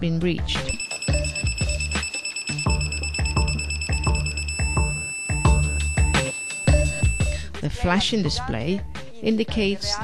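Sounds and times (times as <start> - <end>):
background music with steady beat: 0.5 - 10.0
high-pitched electronic beep: 0.7 - 7.4.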